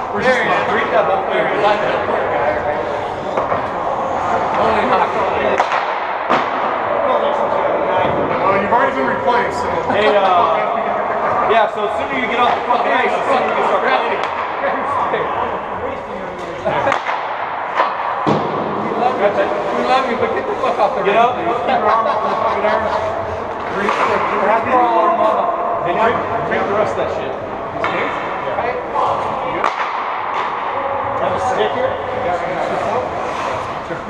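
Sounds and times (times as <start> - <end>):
voices talking and laughing: 0.0 - 5.9, 6.8 - 34.0.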